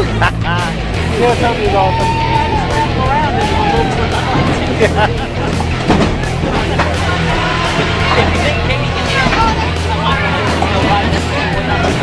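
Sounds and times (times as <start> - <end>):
background music: 0.0 - 12.0
people chattering: 0.0 - 12.0.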